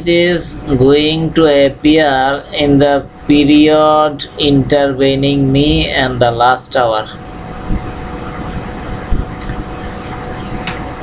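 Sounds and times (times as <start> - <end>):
background rumble and hiss: 0.0 - 11.0
faint constant hum: 0.0 - 11.0.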